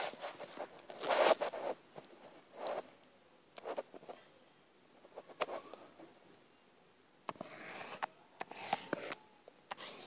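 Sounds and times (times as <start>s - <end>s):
rustling: 0.0s - 4.3s.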